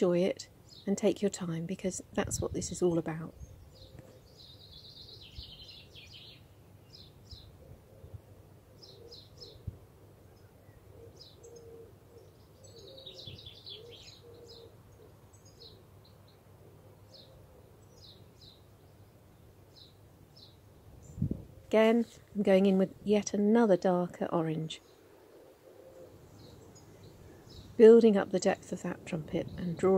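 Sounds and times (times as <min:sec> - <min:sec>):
faint songbirds chirping: 0:00.0 - 0:29.9.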